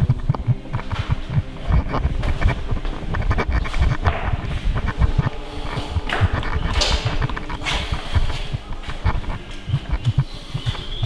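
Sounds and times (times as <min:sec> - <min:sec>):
microphone crackling and thumping: 0:00.0 - 0:11.0.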